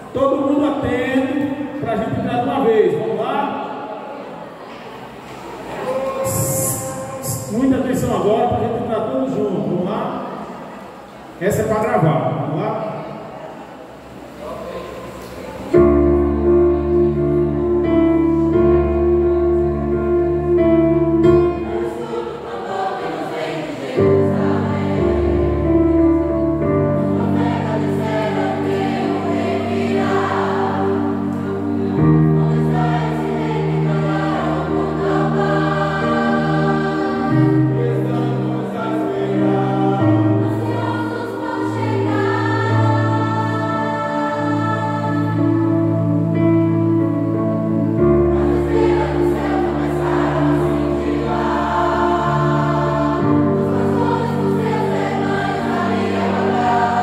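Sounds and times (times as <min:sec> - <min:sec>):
keyboard playing sustained chords: 0:00.0 - 0:57.0
faint room murmur: 0:03.6 - 0:07.4
group of young voices singing: 0:14.9 - 0:46.3, 0:47.7 - 0:57.0.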